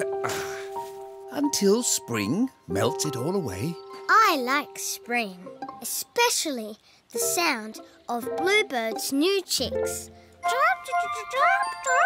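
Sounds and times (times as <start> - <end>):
soft tinkling music: 1.3 - 5.9, 7.2 - 12.0.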